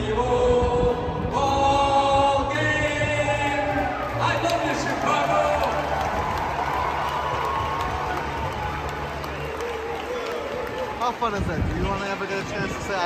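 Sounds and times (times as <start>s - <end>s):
stadium crowd cheering and applauding: 2.5s - 13.0s.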